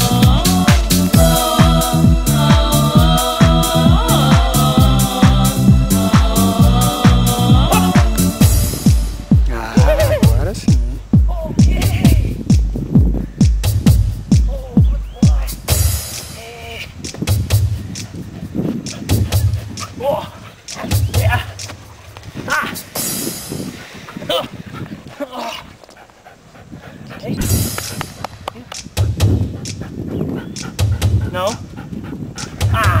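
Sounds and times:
dull low thumps: 0:00.0 - 0:16.2, 0:16.9 - 0:25.2, 0:27.0 - 0:33.0.

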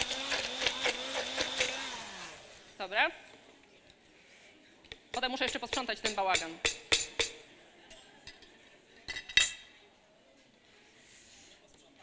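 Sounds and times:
kitchen utensils clinking and knocking: 0:05.1 - 0:07.4.

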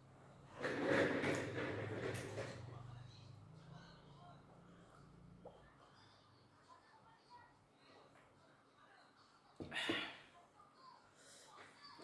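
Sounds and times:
chair casters rolling on tile: 0:00.4 - 0:02.8.

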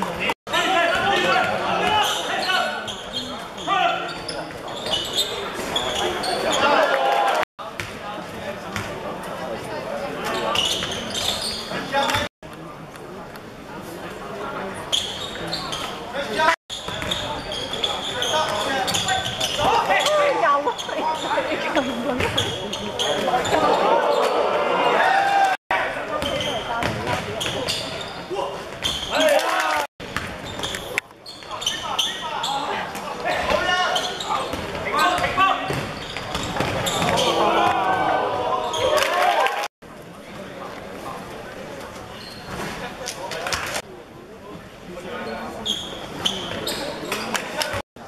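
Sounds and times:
players and spectators shouting: 0:23.4 - 0:26.0, 0:37.0 - 0:39.7.

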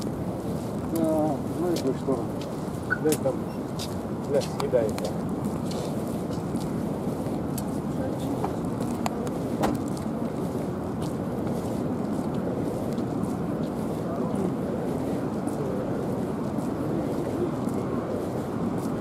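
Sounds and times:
outdoor background noise: 0:00.0 - 0:19.0.

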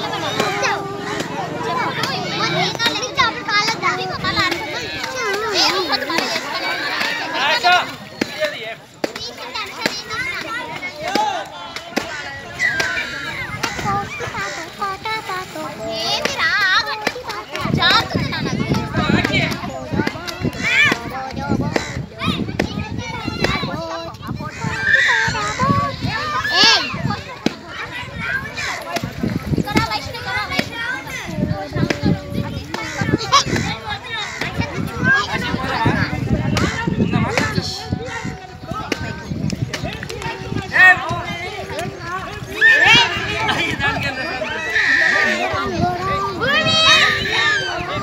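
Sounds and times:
children shouting and squealing: 0:00.0 - 0:48.0.

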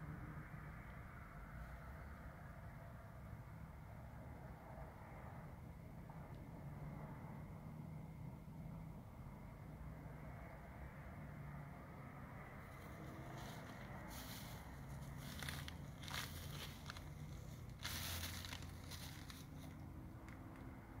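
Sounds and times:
faint low rumble: 0:00.0 - 0:21.0
plastic bags crinkling: 0:15.2 - 0:19.8.

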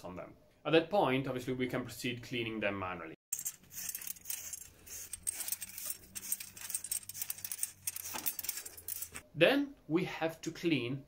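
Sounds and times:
wire brush scrubbing steel coil: 0:03.3 - 0:09.2.

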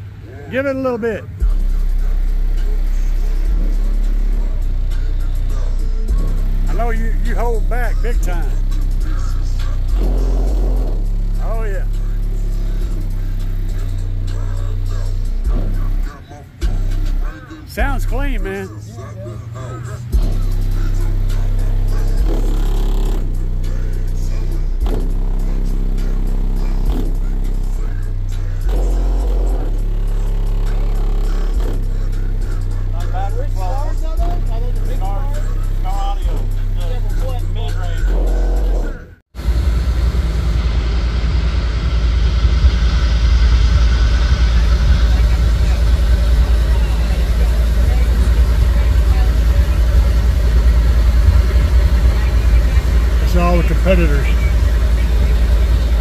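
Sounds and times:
bass-heavy music through subwoofer: 0:00.0 - 0:56.0.

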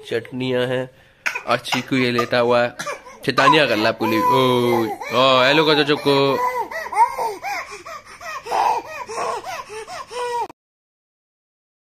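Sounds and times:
baby laughing and squealing: 0:01.9 - 0:10.5.

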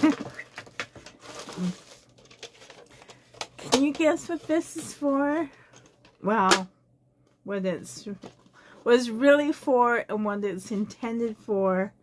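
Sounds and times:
plastic rustling: 0:00.0 - 0:06.2
person speaking: 0:03.6 - 0:05.5.

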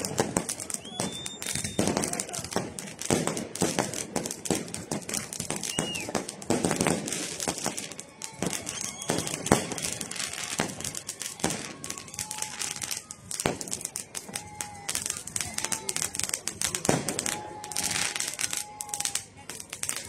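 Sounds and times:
fireworks bangs and crackling: 0:00.0 - 0:20.0
fireworks whistles: 0:00.0 - 0:20.0.

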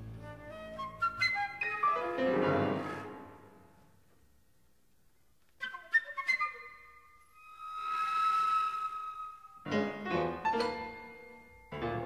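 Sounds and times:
flute with chamber ensemble: 0:00.0 - 0:03.6, 0:05.6 - 0:09.8
long high flute note: 0:06.5 - 0:09.7.

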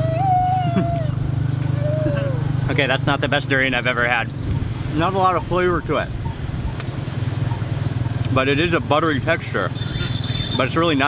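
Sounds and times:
motorcycle engine running: 0:00.0 - 0:10.6.

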